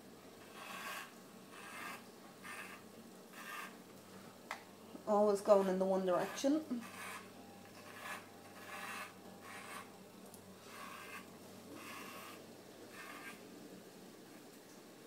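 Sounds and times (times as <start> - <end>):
blades rasping through fur: 0.4 - 3.8, 5.2 - 9.9, 10.6 - 13.4.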